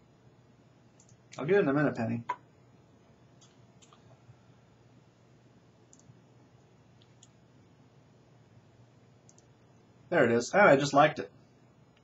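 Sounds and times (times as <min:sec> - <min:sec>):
low room hum: 0:00.0 - 0:12.0
computer mouse clicks: 0:01.0 - 0:01.2, 0:05.9 - 0:06.1, 0:09.3 - 0:09.5.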